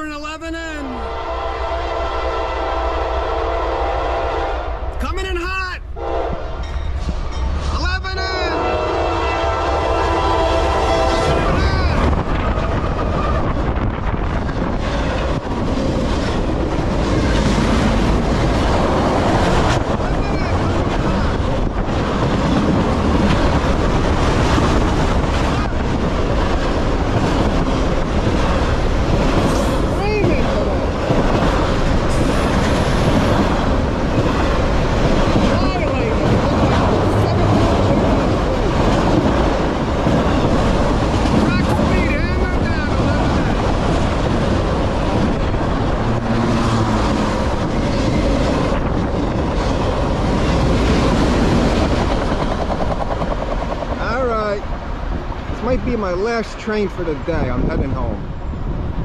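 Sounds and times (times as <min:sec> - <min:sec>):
freight train rumbling past: 0:00.0 - 0:59.0.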